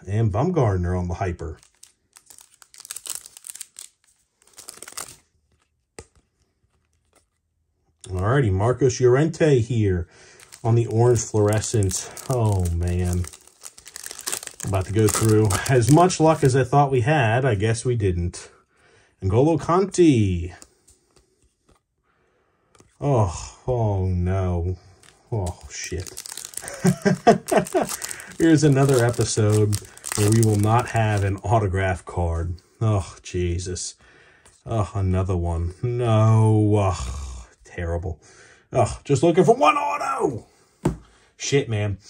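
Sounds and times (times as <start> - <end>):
foil wrapper tearing and crinkling: 1.6 - 5.2, 10.4 - 16.6, 25.0 - 31.4.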